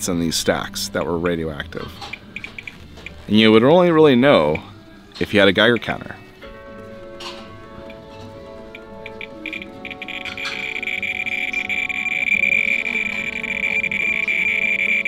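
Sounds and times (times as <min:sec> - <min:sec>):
background music: 0:00.0 - 0:15.0
radiation meter clicking: 0:02.0 - 0:03.2, 0:07.8 - 0:08.0, 0:08.7 - 0:15.0.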